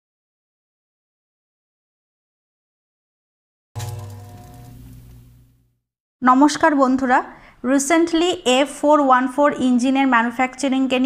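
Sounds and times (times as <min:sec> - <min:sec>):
music sting chord: 0:03.8 - 0:05.4.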